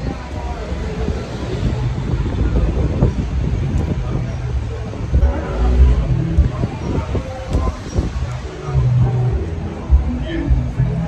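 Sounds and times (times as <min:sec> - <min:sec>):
street noise: 0:00.0 - 0:11.0
wind buffeting microphone: 0:00.0 - 0:11.0.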